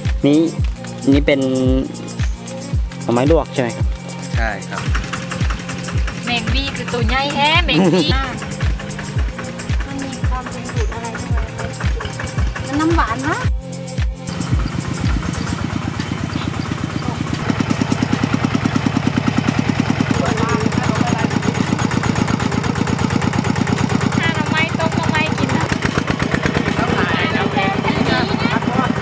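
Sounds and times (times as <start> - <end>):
diesel engine chugging: 0.0 - 29.0.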